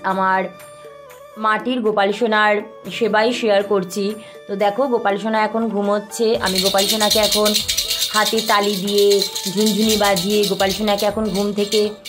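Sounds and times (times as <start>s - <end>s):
toy ball rattle shaken: 6.4s - 12.0s.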